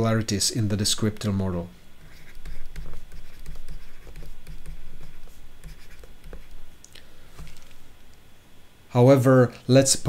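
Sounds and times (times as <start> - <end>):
stylus scratching on tablet: 2.0 - 6.7.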